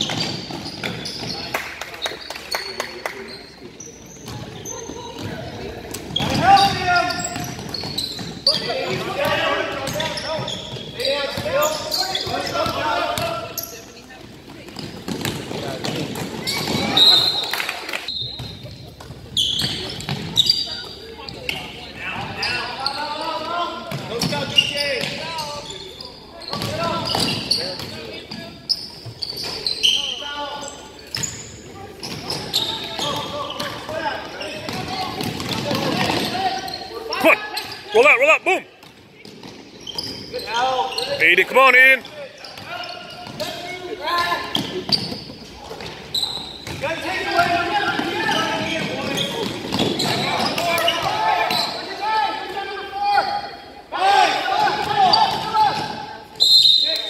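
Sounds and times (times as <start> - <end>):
spectators' voices echoing: 0.0 - 28.6, 40.2 - 46.1.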